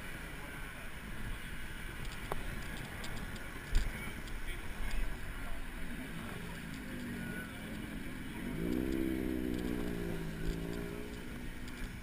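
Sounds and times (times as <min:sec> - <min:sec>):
street traffic hum: 0:00.0 - 0:12.0
vehicle engine accelerating: 0:05.1 - 0:12.0.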